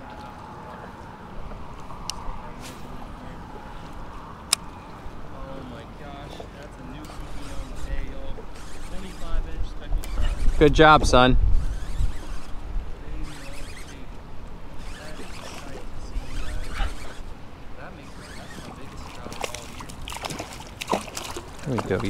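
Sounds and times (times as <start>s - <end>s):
faint voices: 0.0s - 20.7s
water sloshing against kayak hull: 15.1s - 22.0s.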